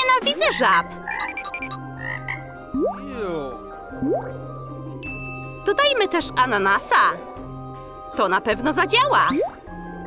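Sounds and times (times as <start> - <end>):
cartoon frog croak: 0.5 - 3.0.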